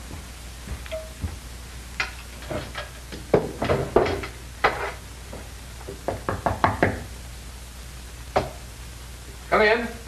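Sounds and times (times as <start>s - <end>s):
knocking on a door: 6.1s - 7.0s.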